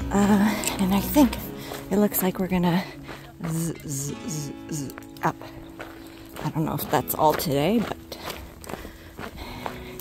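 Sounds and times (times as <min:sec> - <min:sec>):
footsteps on gravel: 0:00.0 - 0:10.0
outdoor background noise: 0:00.0 - 0:10.0.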